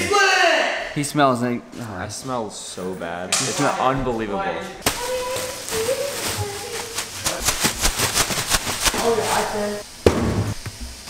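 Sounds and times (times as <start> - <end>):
clothes rustling from laundry bag: 4.9 - 9.8.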